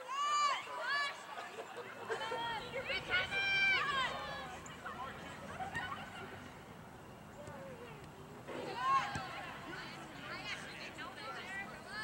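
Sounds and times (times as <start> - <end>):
distant voices: 2.0 - 12.0.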